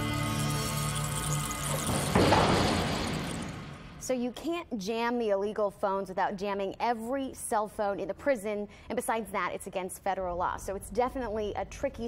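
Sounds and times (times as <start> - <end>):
background music: 0.0 - 4.4.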